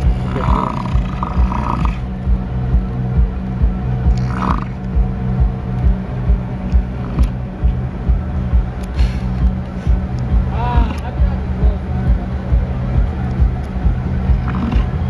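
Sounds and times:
bison bull bellowing: 0.0 - 2.1
background music with steady beat: 0.0 - 15.0.

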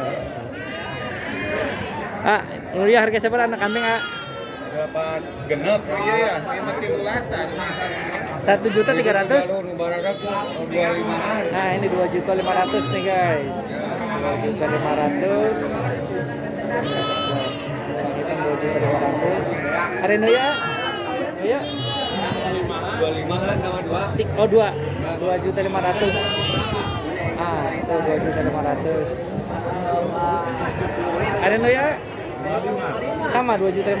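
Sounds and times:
goat bleating: 0.6 - 1.6, 3.6 - 4.8, 7.5 - 10.7, 12.4 - 13.2, 16.8 - 17.8, 20.2 - 22.6, 25.9 - 27.2
men talking: 2.1 - 34.0.

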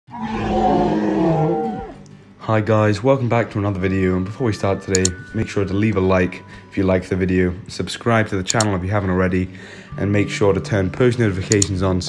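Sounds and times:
dinosaur roar: 0.1 - 2.1.

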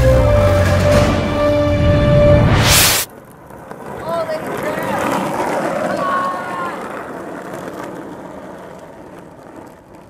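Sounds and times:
skateboard wheels rolling on asphalt: 2.7 - 10.0.

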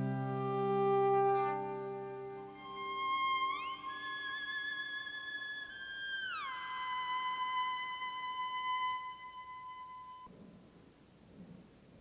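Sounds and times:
electric violin high note: 0.0 - 10.3.

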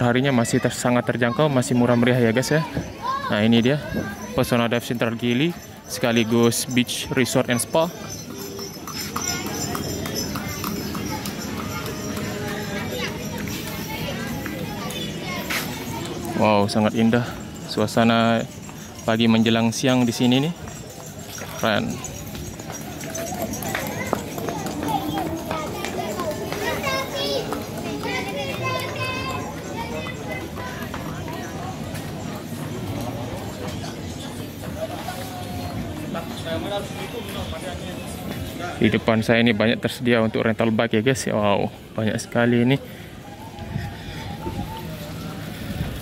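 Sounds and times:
children calling and chattering: 0.0 - 46.0
street noise: 0.0 - 46.0
horse hooves clip-clopping on pavement: 5.5 - 38.8.

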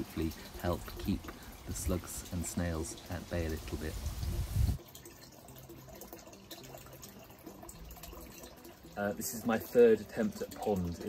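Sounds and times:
water trickling and dripping: 0.0 - 11.0.

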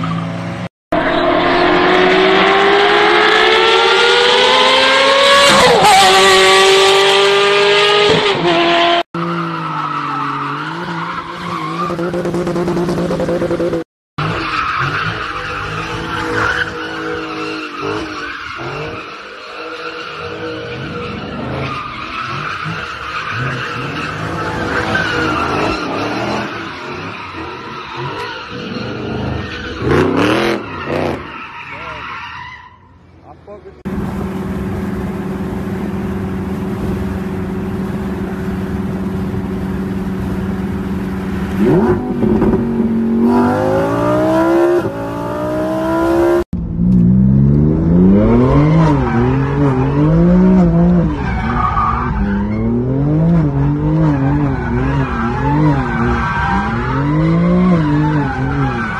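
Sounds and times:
car engine revving: 0.9 - 11.0, 33.8 - 58.9.

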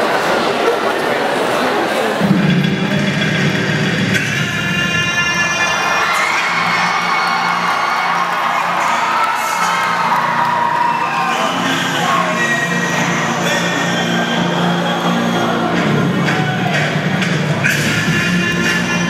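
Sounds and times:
crowd cheering and shouting: 0.0 - 19.0
song over sound system: 2.2 - 19.0.

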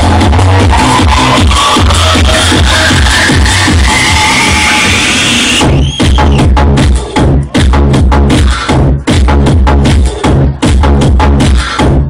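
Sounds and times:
rising synth sweep: 0.0 - 5.6
electronic dance music: 0.0 - 12.0.

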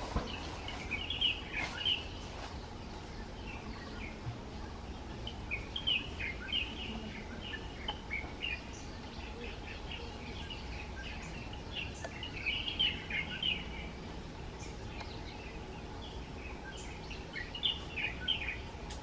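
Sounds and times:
small birds chirping: 0.0 - 19.0
steady low background noise: 0.0 - 19.0.

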